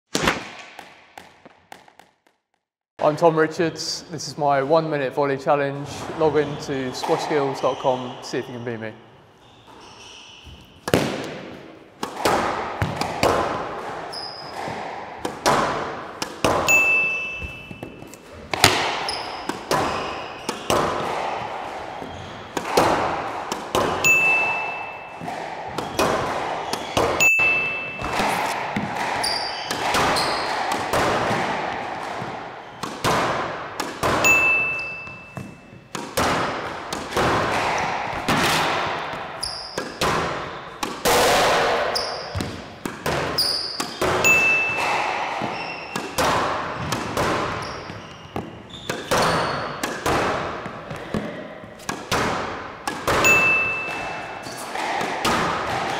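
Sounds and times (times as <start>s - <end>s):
squash ball hitting racket and wall: 0.1s - 2.4s, 9.6s - 55.9s
shoes squeaking on court floor: 5.7s - 38.0s, 38.9s - 41.0s, 41.8s - 52.1s, 52.8s - 55.1s.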